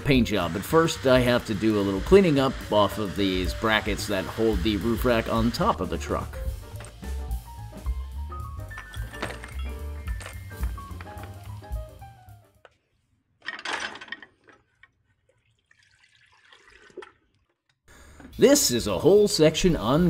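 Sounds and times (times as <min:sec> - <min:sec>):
background music with steady beat: 0:00.0 - 0:12.6
liquid splashing and sloshing: 0:14.3 - 0:17.7.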